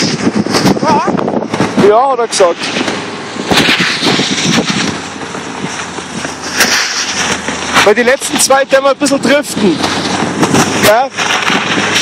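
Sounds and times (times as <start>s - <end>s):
car driving over snow: 0.0s - 12.0s
wind buffeting microphone: 0.0s - 12.0s.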